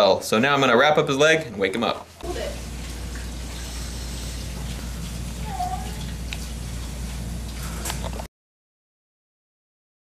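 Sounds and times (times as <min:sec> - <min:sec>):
room hum and hiss: 0:00.0 - 0:08.3.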